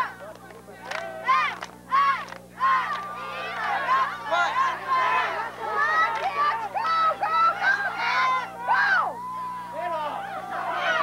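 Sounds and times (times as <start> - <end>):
faint steady hum: 0.0 - 11.0
girls chanting a cheer: 1.0 - 9.3, 10.2 - 11.0.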